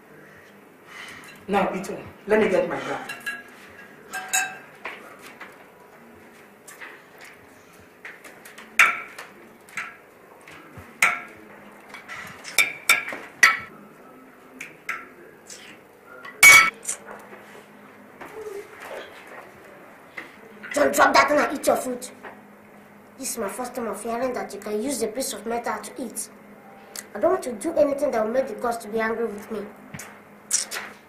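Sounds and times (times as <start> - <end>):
cutlery clinking against plates: 2.8 - 5.6, 8.1 - 13.7, 14.6 - 15.2, 16.2 - 16.8.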